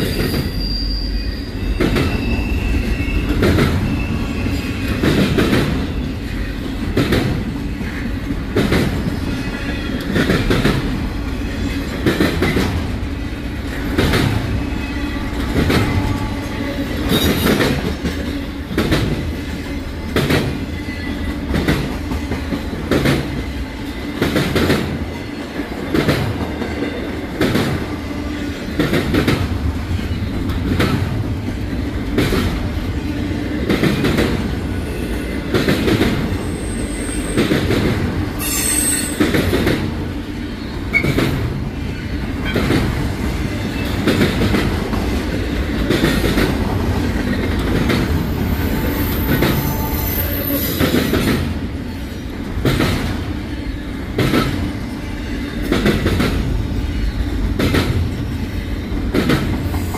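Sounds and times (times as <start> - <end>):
wheel squeals: 0.0 - 5.2, 38.4 - 39.4, 48.3 - 51.1
freight train rumbling past: 0.0 - 59.9
train wheels clacking: 0.0 - 59.9.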